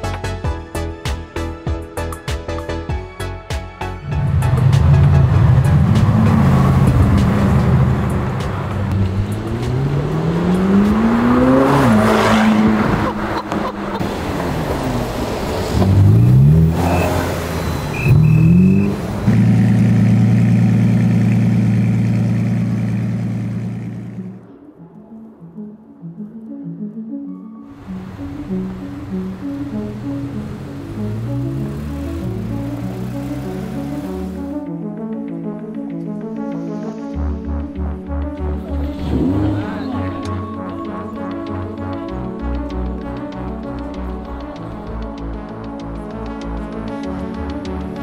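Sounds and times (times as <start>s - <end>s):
sports car engines accelerating: 4.0s - 24.4s, 27.7s - 34.7s, 37.2s - 48.0s
engine rev blips: 4.1s - 24.4s, 27.8s - 34.6s.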